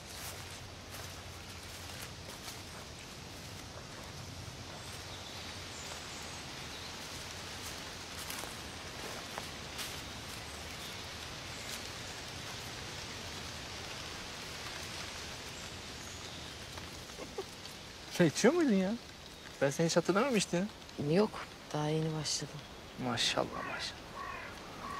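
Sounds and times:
dry leaves crackling underfoot: 0.0 - 24.9
soft outdoor hiss: 0.0 - 24.9.

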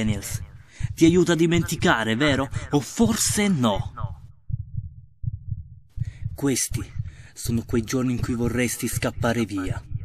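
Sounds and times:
heartbeat thumps: 0.0 - 10.0.

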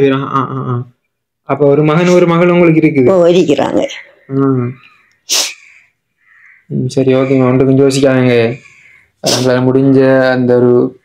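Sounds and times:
sharp breathy burst: 5.2 - 6.7, 8.5 - 9.6
person speaking: 6.7 - 11.0.

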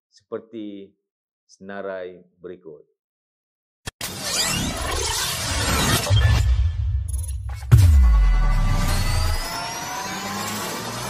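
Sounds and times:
whooshing riser with rising tones: 4.9 - 11.0.

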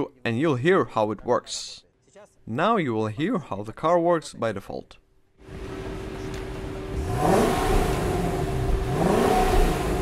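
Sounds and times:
car engine idling and revving: 5.4 - 10.0.

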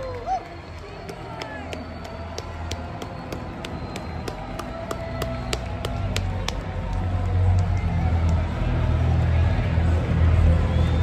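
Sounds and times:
large crowd noise: 0.0 - 11.0
music over sound system: 0.5 - 11.0.

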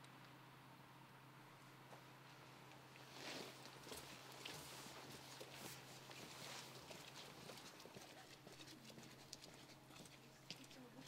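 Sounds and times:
footsteps on wet paving: 3.4 - 10.9.

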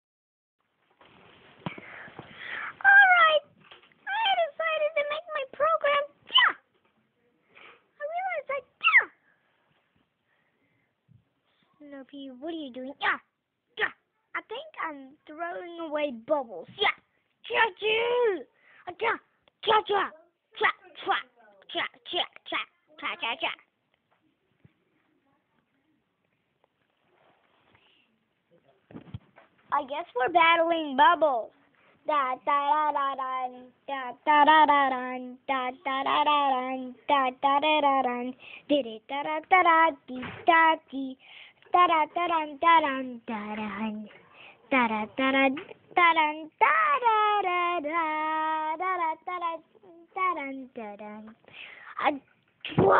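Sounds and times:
faint soft rustle: 0.7 - 2.7, 23.9 - 30.0, 31.5 - 32.1
child singing wordless syllables: 4.1 - 6.6, 29.7 - 52.9.

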